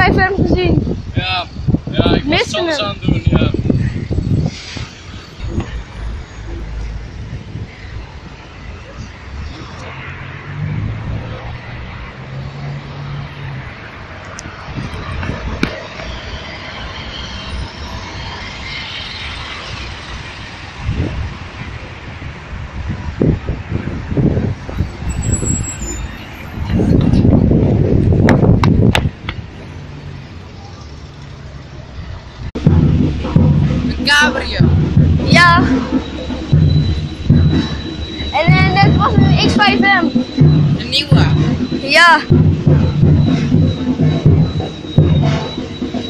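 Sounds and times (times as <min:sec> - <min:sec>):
car engines running: 0:18.6 - 0:46.0
low thumps: 0:32.4 - 0:46.0
engine note rising in pitch: 0:32.6 - 0:46.0.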